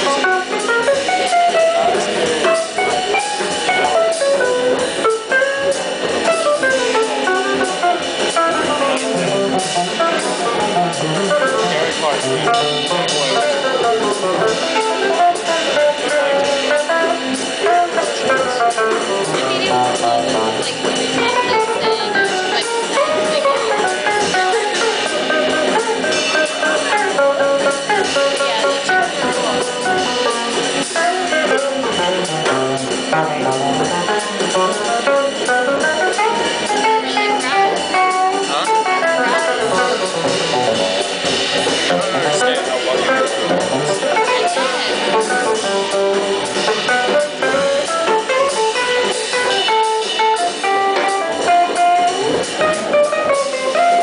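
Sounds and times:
drum kit: 0:00.0 - 0:54.0.

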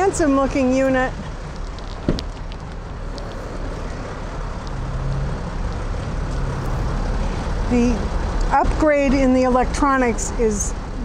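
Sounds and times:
vehicle and traffic noise: 0:00.0 - 0:11.0.

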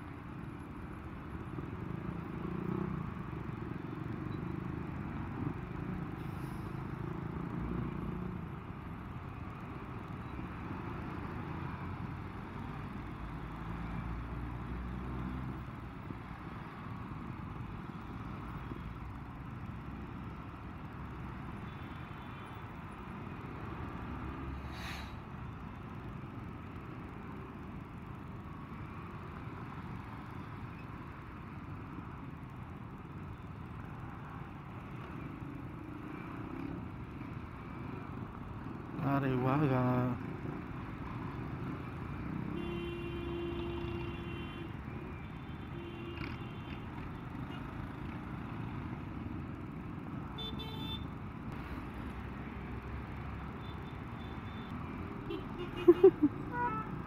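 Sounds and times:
traffic noise: 0:00.0 - 0:57.0.

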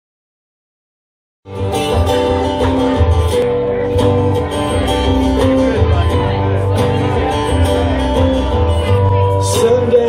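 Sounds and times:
acoustic guitar strumming: 0:01.5 - 0:10.0
bass line: 0:01.5 - 0:10.0.

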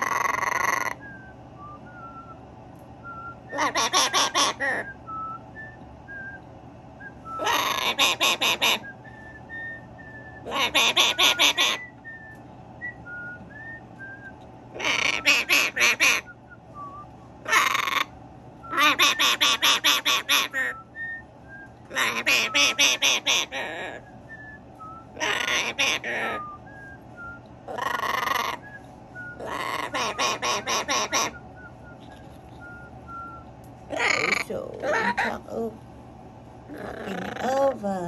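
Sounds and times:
macaw harsh calls: 0:00.0 - 0:01.1, 0:03.5 - 0:04.9, 0:07.4 - 0:08.9, 0:10.5 - 0:11.9, 0:14.8 - 0:16.3, 0:17.5 - 0:18.1, 0:18.7 - 0:20.8, 0:21.9 - 0:24.0, 0:25.2 - 0:26.4, 0:27.7 - 0:28.7, 0:29.4 - 0:31.4, 0:33.9 - 0:35.4.

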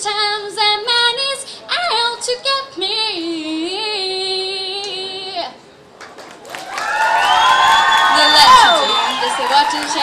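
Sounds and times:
audience cheering and screaming: 0:06.5 - 0:10.0.

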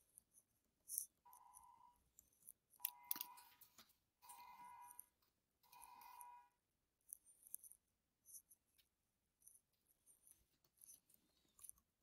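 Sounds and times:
faint keyboard typing: 0:00.0 - 0:06.4, 0:07.0 - 0:12.0.

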